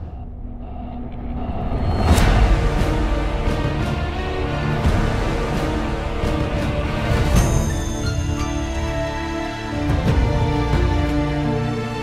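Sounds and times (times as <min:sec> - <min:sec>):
low rumbling drone: 0:00.0 - 0:11.9.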